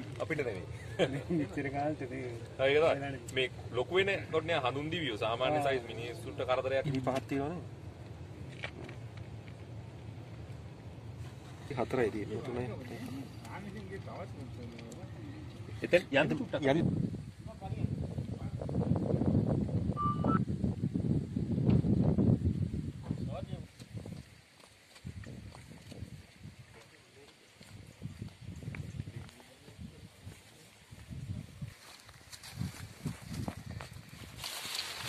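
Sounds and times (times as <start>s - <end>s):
camera handling rumble: 8.4s - 9.6s
two-step high tone: 20.0s - 20.4s
footsteps through dry grass: 27.4s - 35.0s
leaves brushing: 31.6s - 35.0s
twigs crackling: 31.8s - 35.0s.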